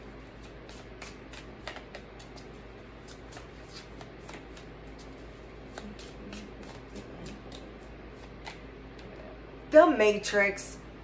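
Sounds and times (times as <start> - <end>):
cards being shuffled: 0.3 - 8.6.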